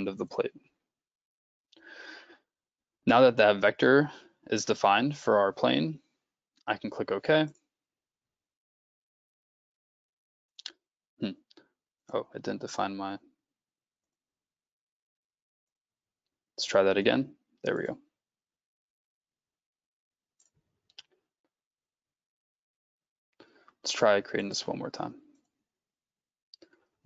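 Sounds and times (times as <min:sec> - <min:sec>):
man talking: 0:00.0 - 0:00.6, 0:03.1 - 0:06.0, 0:06.7 - 0:07.5, 0:12.1 - 0:13.2, 0:16.6 - 0:18.0, 0:23.9 - 0:25.2
man's voice: 0:03.1 - 0:06.0, 0:06.7 - 0:07.5, 0:12.2 - 0:13.2, 0:16.6 - 0:18.0, 0:23.9 - 0:25.1.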